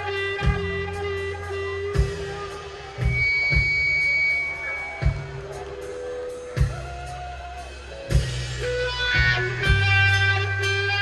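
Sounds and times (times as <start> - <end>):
held electric guitar and bass notes: 0.0 - 11.0.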